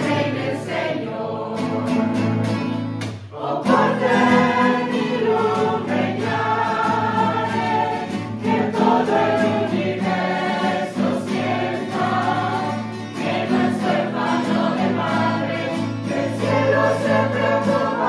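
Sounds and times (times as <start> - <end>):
choir singing a hymn: 0.0 - 18.0
guitars: 0.0 - 18.0.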